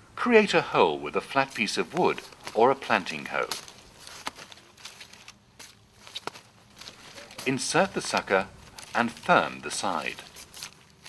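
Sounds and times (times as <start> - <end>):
faint rustling: 1.3 - 11.0.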